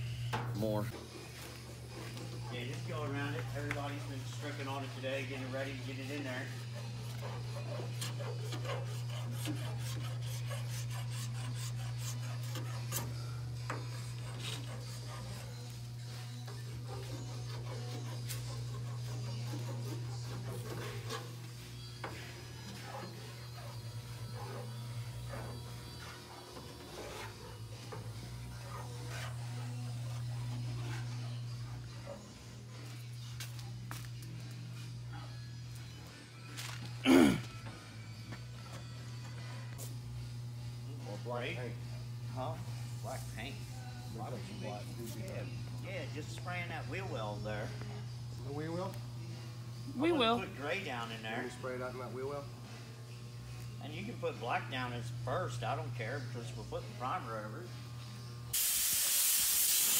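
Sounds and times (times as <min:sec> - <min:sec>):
hand tool scraping steel: 0:01.0 - 0:32.3.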